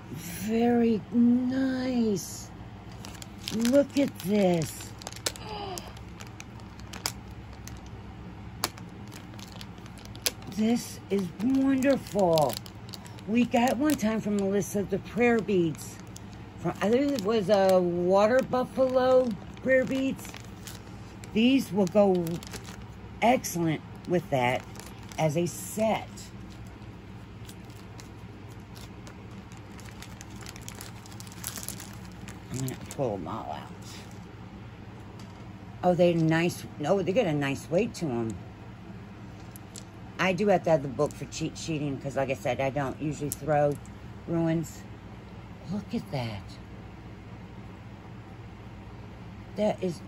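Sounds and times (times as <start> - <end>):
steady low hum: 0.0 - 50.0
plastic bag crinkling: 2.8 - 34.3, 39.3 - 40.0.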